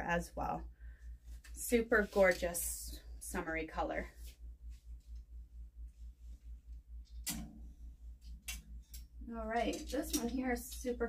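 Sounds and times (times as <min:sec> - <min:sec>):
plastic hanger clicking on metal rack: 0:07.1 - 0:07.6, 0:08.2 - 0:11.0.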